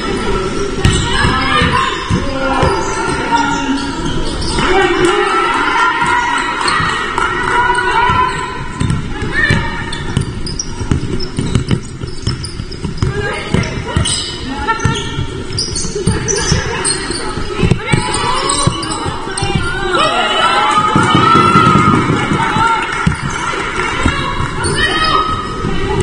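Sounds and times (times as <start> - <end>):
players calling out: 0.0 - 26.0
basketball bouncing on wooden court: 0.8 - 3.2, 6.0 - 19.9, 20.8 - 24.8
shoes squeaking: 7.7 - 20.1.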